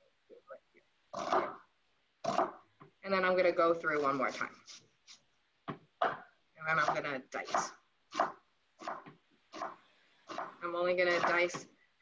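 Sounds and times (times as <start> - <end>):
knife chopping on wooden board: 6.8 - 11.7.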